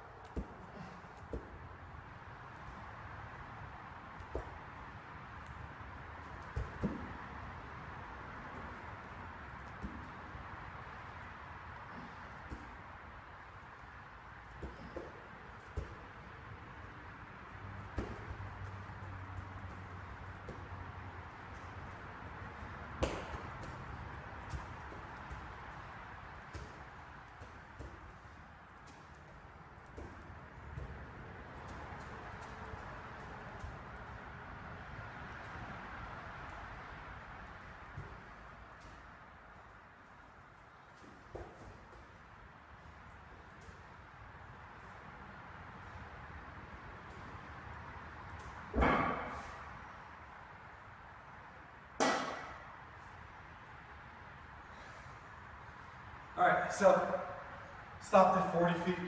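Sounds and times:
loud thud: 48.7 - 49.5.

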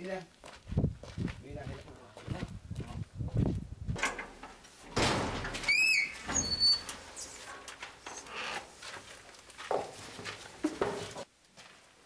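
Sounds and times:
footsteps on gravel: 0.3 - 3.7, 7.4 - 11.9
metal gate opening: 4.0 - 8.6
gate hinge squeak: 5.6 - 7.3.

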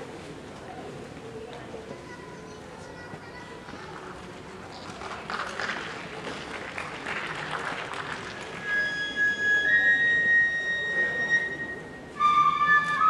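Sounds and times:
audience applause: 4.7 - 8.8
bamboo flute high notes: 8.6 - 13.0.

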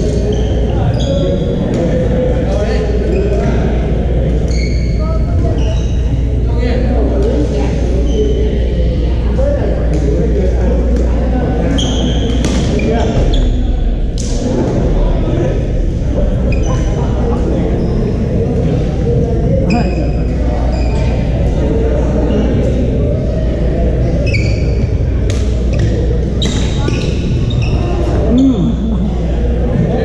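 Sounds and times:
echoing chatter in sports hall: 0.0 - 30.0
sneaker squeaks on gym floor: 0.2 - 1.7, 4.5 - 6.1, 11.7 - 13.6, 16.5 - 17.0, 19.7 - 21.3, 24.2 - 24.8, 25.6 - 28.7.

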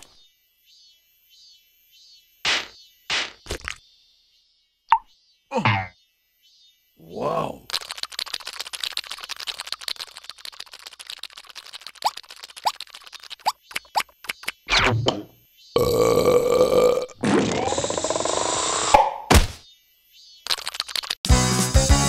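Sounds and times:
rapid wet slurps: 7.7 - 14.4.

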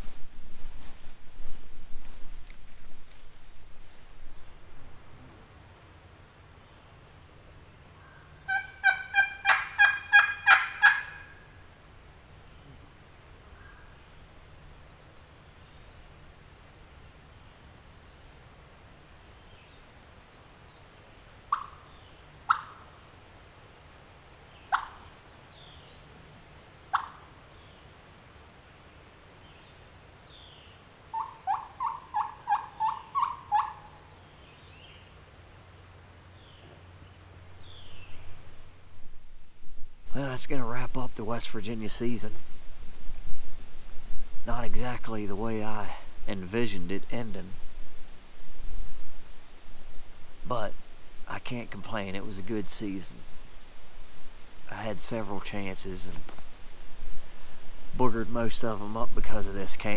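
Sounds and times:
turkey call clucks: 8.4 - 11.4, 21.5 - 21.8, 22.5 - 22.9, 24.7 - 25.0, 26.9 - 27.3, 31.1 - 34.1
turkey call yelps: 8.5 - 11.4, 21.5 - 21.8, 22.5 - 22.9, 24.7 - 25.0, 26.9 - 27.3, 31.1 - 34.1.

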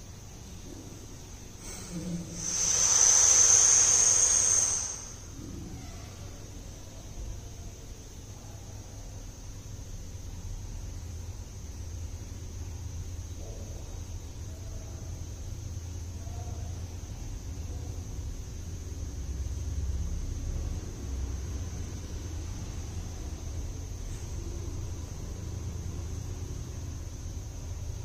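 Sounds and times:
low steady hum: 0.0 - 28.0
hissing breath through lips: 1.6 - 5.6.

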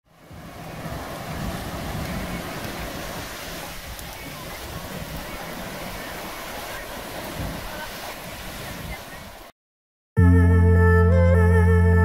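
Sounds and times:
surf washing onto beach: 0.0 - 9.5
wind rumbling on microphone: 0.1 - 9.5.

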